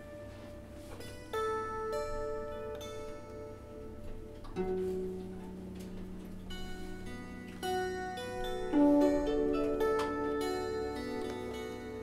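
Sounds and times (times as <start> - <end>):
plucked zither notes: 0.0 - 12.0.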